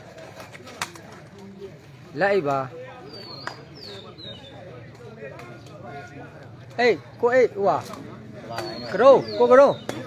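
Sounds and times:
faint distant voices: 0:00.0 - 0:10.0
bird calls: 0:02.8 - 0:06.1, 0:08.4 - 0:10.0.

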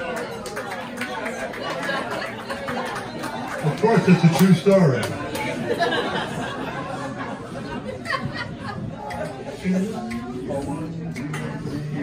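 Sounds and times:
overlapping audience chatter: 0:00.0 - 0:12.0
man speaking: 0:03.6 - 0:05.0.

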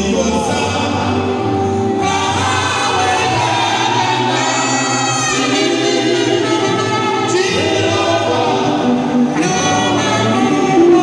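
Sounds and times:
choir singing gospel: 0:00.0 - 0:11.0.

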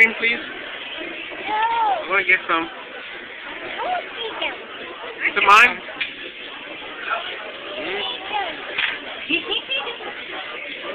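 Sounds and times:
steady background noise: 0:00.0 - 0:10.9.

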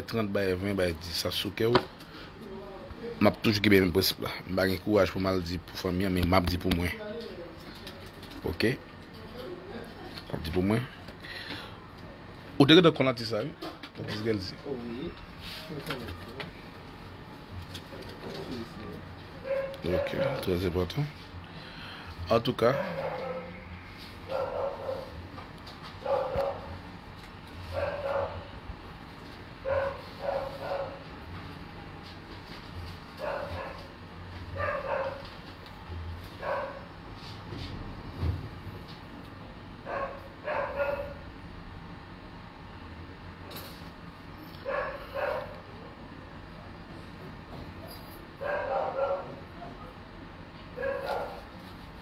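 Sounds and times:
dog barking: 0:19.4 - 0:20.4, 0:22.8 - 0:23.6, 0:24.3 - 0:25.2, 0:26.0 - 0:26.8, 0:27.7 - 0:28.5, 0:29.6 - 0:31.0, 0:33.2 - 0:33.9, 0:34.6 - 0:35.2, 0:36.4 - 0:36.9, 0:39.9 - 0:41.2, 0:44.6 - 0:45.6, 0:48.4 - 0:49.7, 0:50.8 - 0:51.5.

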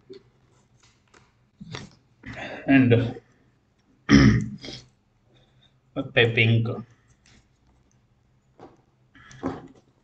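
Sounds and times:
man coughing: 0:04.1 - 0:04.7.

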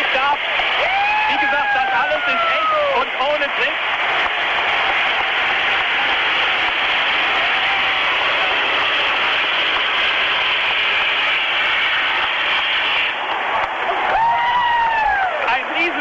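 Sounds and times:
jet pack rushing hiss: 0:00.0 - 0:16.0.

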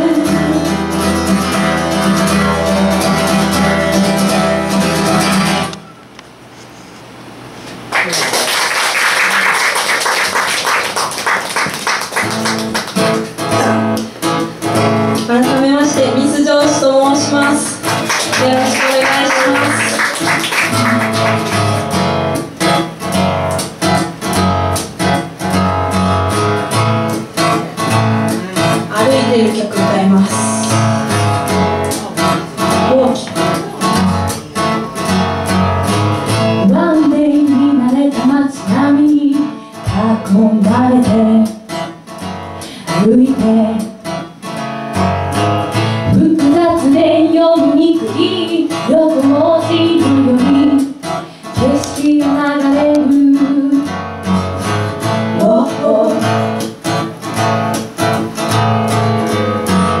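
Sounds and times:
woman singing: 0:00.0 - 0:04.3, 0:15.2 - 0:21.2, 0:28.7 - 0:30.9, 0:32.7 - 0:33.6, 0:36.6 - 0:41.6, 0:42.9 - 0:44.2, 0:46.0 - 0:54.0, 0:55.3 - 0:56.4
strummed acoustic guitar: 0:00.0 - 0:06.0, 0:09.3 - 1:00.0.

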